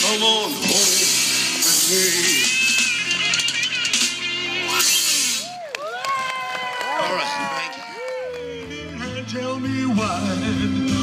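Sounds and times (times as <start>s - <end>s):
man singing: 8.4s - 11.0s.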